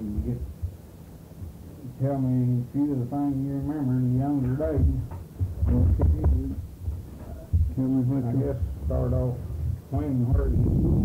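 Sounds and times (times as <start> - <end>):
indistinct voices on tape: 0.0 - 0.6, 1.8 - 11.0
low uneven rumble: 1.9 - 11.0.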